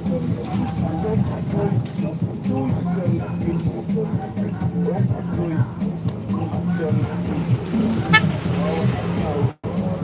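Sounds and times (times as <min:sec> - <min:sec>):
faint voices: 0:00.0 - 0:09.6
low hum of traffic: 0:00.0 - 0:10.0
vehicle horn toot: 0:08.1 - 0:08.4.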